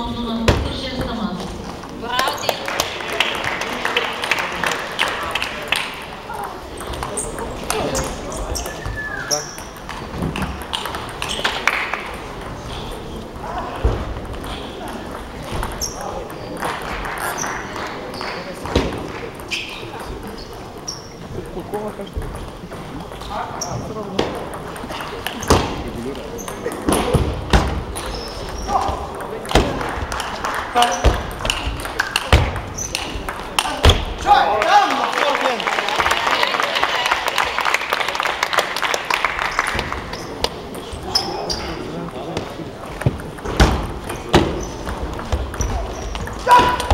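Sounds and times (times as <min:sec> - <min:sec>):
spectators talking: 0:00.0 - 0:46.9
table tennis ball clicking: 0:30.9 - 0:33.8.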